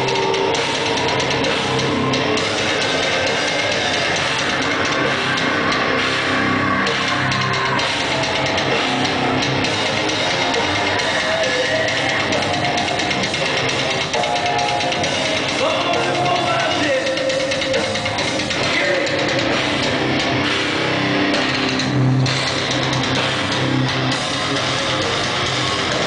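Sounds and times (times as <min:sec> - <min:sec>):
drum kit: 0:00.0 - 0:26.0
electric guitar: 0:00.0 - 0:26.0.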